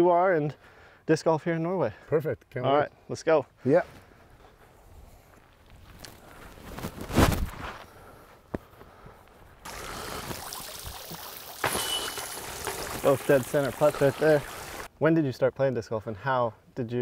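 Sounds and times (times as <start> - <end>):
running water: 9.7 - 14.9
disc throw burst: 11.6 - 14.9.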